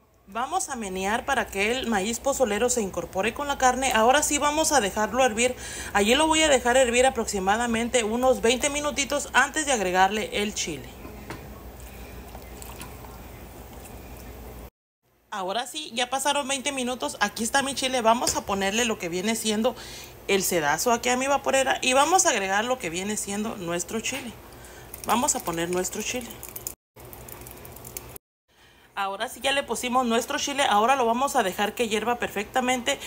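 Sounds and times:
broth bubbling in a pot: 11.0 - 14.7, 24.4 - 28.2
sauce pouring through a strainer: 11.8 - 14.4, 24.4 - 28.2.

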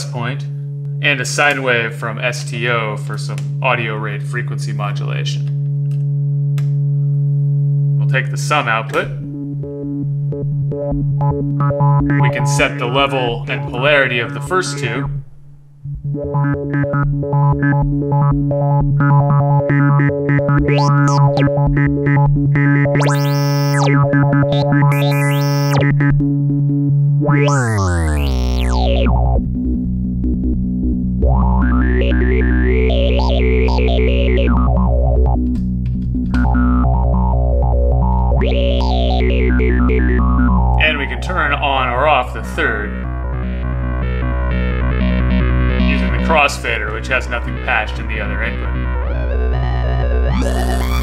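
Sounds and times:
synthesizer drone: 15.8 - 41.6, 42.3 - 51.0.

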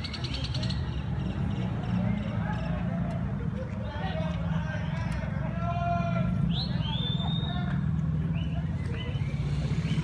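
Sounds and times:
distant voices: 0.0 - 10.0
low street rumble: 0.0 - 10.0.

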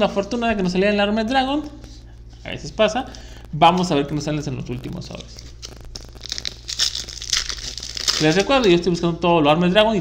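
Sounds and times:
foil wrapper crinkling and tearing: 4.8 - 9.0.

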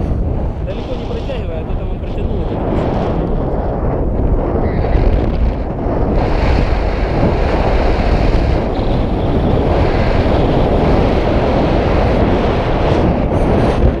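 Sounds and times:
wind rushing over microphone: 0.0 - 14.0.

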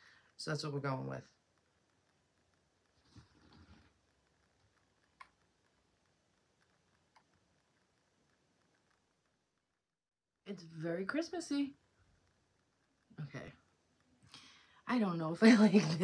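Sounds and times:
faint soft rustle: 1.2 - 9.4.

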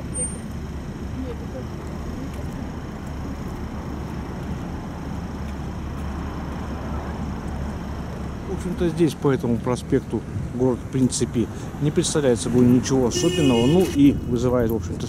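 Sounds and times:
road traffic rumble: 0.0 - 15.0
faint pedestrian voices: 1.0 - 15.0.

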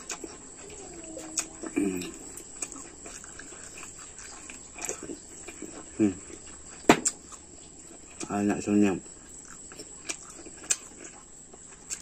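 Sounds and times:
closed-mouth hums: 0.0 - 8.3
man chewing food: 0.0 - 12.0.

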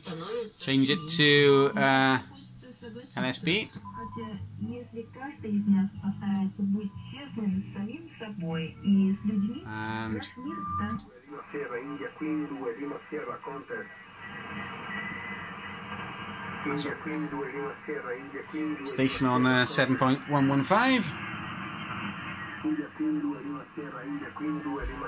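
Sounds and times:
radio tuning squeal and whistle: 0.0 - 4.4, 13.0 - 23.0
radio static: 0.0 - 25.0
voice over radio: 16.7 - 21.2.

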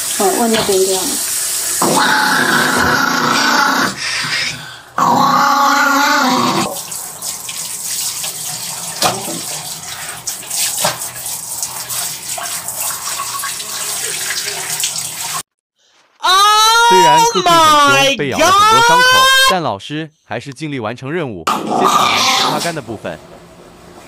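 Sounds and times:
shower water running: 0.0 - 4.7, 5.7 - 15.5
dog growling: 1.8 - 6.8, 21.5 - 22.8.

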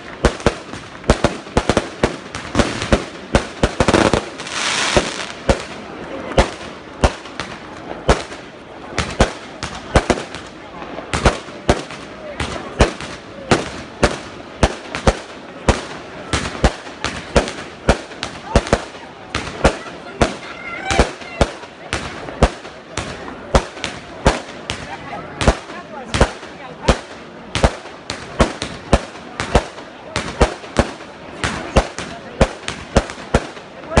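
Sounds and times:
firecrackers banging: 0.0 - 34.0.

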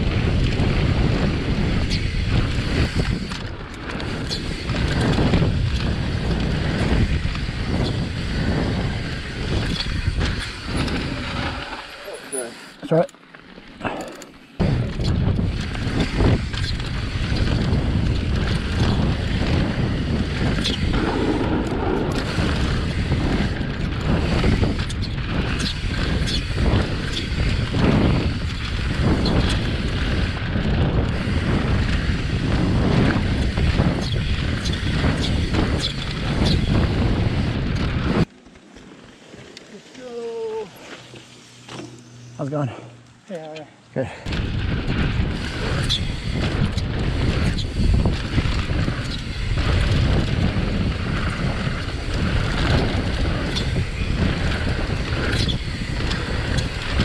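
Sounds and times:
wind rumble on microphone: 0.0 - 12.0, 13.8 - 38.4, 44.0 - 57.0
bike tyre noise on dirt: 0.0 - 57.0
people talking: 12.0 - 13.1, 39.7 - 40.7, 42.4 - 44.2
bike knocks and rattles: 13.3 - 39.6, 40.8 - 42.2, 44.2 - 57.0.

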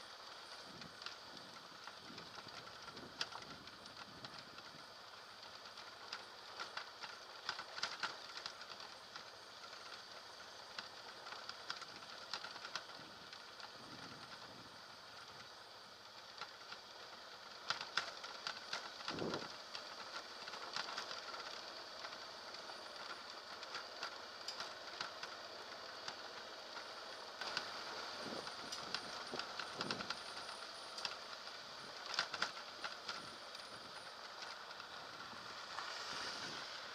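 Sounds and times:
motorcycle ride noise hiss: 0.0 - 36.9
clicks and knocks from bumps: 26.8 - 35.0.

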